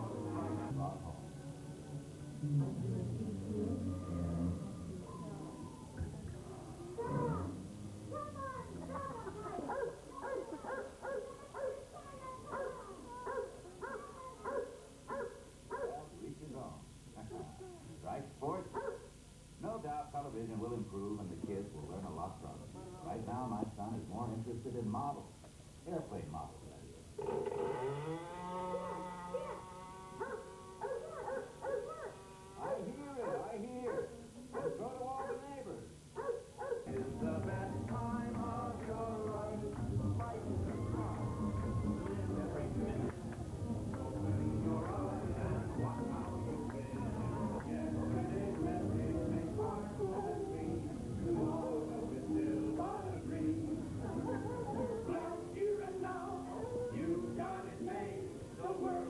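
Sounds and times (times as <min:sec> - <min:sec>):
dog barking and yelping: 0:08.2 - 0:16.0, 0:18.8 - 0:19.0, 0:28.7 - 0:35.4, 0:36.2 - 0:36.9.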